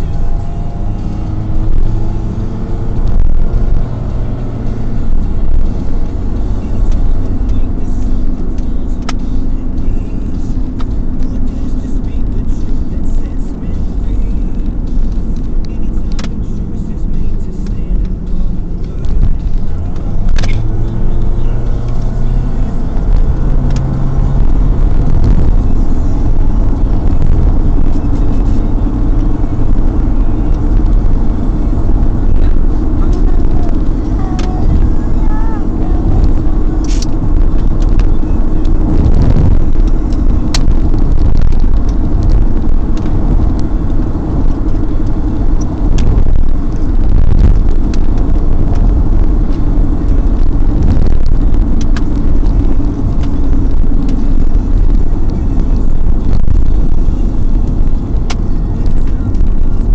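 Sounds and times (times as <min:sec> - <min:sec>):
car engine and tyre rumble: 0:00.0 - 0:59.9
sharp clicks: 0:04.9 - 0:09.9, 0:14.5 - 0:34.9, 0:36.1 - 0:55.3.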